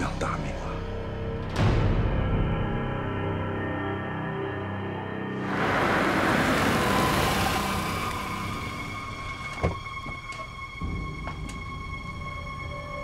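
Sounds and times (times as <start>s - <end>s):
rush of noise: 5.3s - 9.5s.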